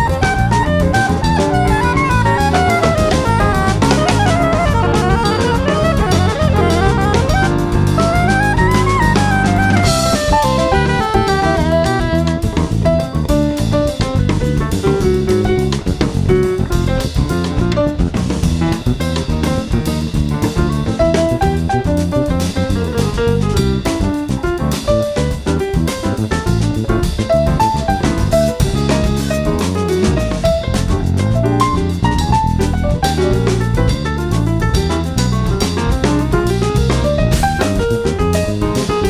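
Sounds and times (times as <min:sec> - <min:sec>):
plucked-string melody: 0:00.0 - 0:13.4
saxophone: 0:00.0 - 0:13.8
drum kit keeping time: 0:00.0 - 0:39.0
electric bass: 0:00.0 - 0:39.0.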